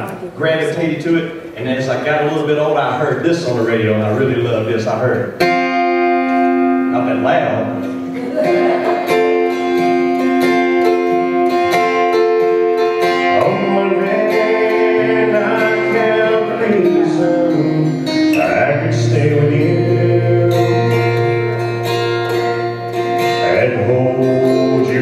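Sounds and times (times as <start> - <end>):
acoustic guitar strumming: 0.0 - 25.0
man singing: 13.2 - 21.6, 23.4 - 25.0.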